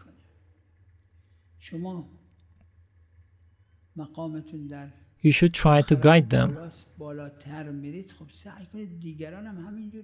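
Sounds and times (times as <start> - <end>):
person speaking: 5.2 - 6.6.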